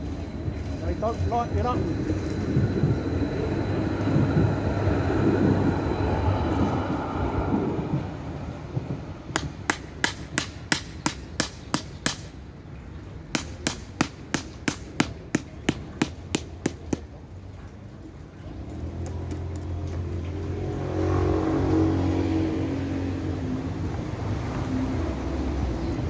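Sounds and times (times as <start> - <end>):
tram rumbling past: 0.0 - 26.0
hammer tapping on wooden stake: 9.3 - 12.3, 13.3 - 17.1.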